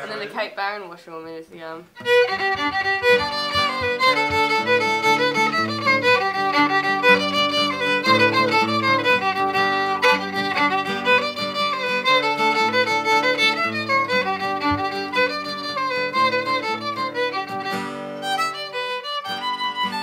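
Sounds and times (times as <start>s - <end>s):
bowed fiddle melody: 1.8s - 20.0s
strummed acoustic guitar: 2.0s - 20.0s.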